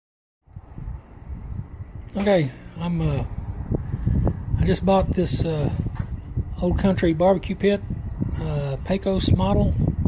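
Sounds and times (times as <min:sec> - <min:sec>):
wind buffeting microphone: 0:00.4 - 0:10.0.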